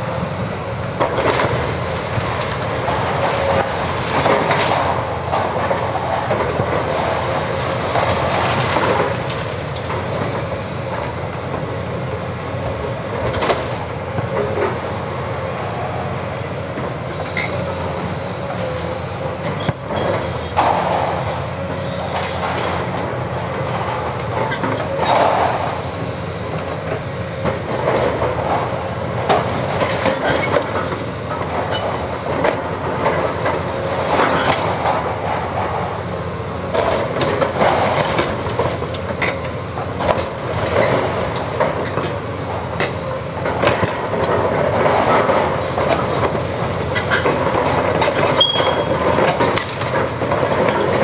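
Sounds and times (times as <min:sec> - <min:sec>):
diesel engine under load: 0:00.0 - 0:51.0
falling rubble: 0:27.4 - 0:51.0.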